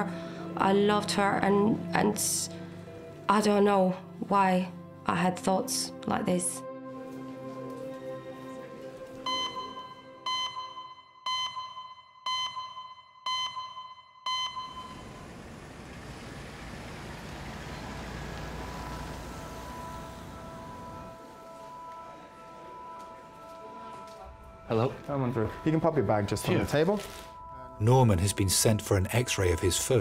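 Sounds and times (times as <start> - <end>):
electronic beeps: 9.3 - 15.0
low rumble of street traffic: 14.8 - 22.2.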